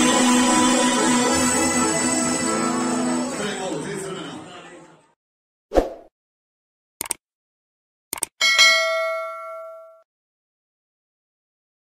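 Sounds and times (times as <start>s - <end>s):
notification bell ding: 8.4s - 10.1s.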